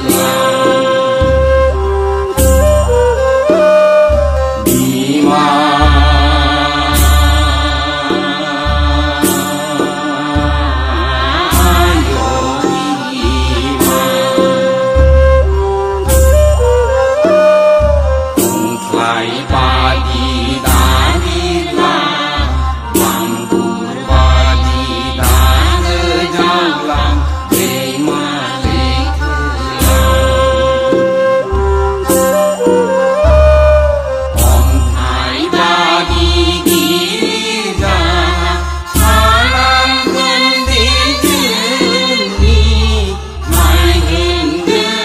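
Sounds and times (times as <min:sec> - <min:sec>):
flute melody: 0:00.0 - 0:07.8, 0:10.9 - 0:36.4
chanted vocal line: 0:00.0 - 0:45.0.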